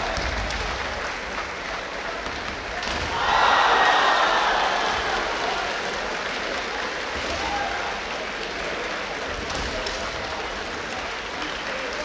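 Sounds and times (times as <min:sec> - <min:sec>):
spectators applauding: 0:00.0 - 0:12.0.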